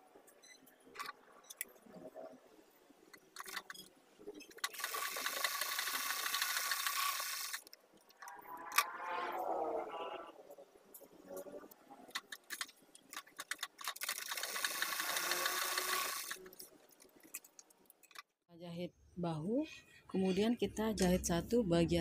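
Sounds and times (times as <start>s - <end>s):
electric sewing machine stitching: 4.6s - 7.7s, 13.4s - 16.5s.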